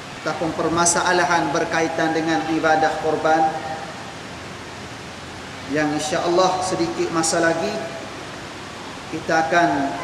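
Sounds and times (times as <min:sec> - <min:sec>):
recording hiss: 0:00.0 - 0:10.0
man talking: 0:00.2 - 0:03.9, 0:05.7 - 0:08.0, 0:09.1 - 0:10.0.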